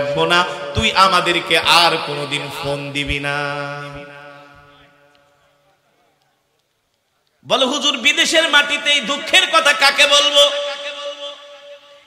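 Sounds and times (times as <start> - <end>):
man chanting over loudspeaker: 0.0 - 6.0, 7.4 - 12.0.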